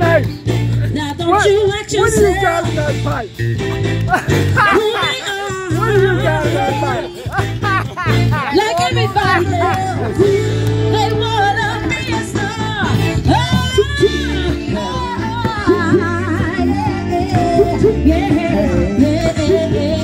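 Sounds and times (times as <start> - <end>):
live band music: 0.0 - 20.0
steady bass line: 0.0 - 20.0
person singing: 8.5 - 20.0.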